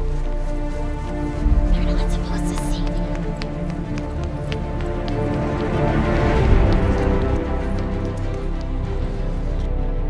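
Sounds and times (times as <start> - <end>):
music playing: 0.0 - 10.0
footsteps running on hard ground: 0.6 - 9.9.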